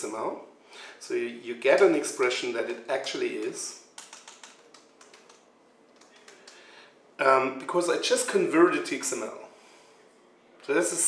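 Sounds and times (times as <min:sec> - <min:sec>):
faint laptop keystrokes: 0:04.0 - 0:06.7.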